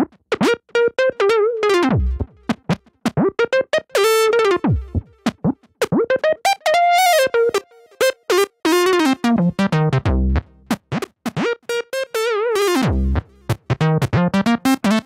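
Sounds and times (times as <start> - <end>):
synthesizer bass and lead notes: 3.8 - 7.9.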